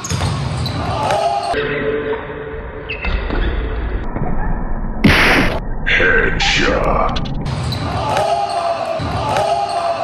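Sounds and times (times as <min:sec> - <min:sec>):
players shouting: 0:00.6 - 0:01.6, 0:05.9 - 0:10.0.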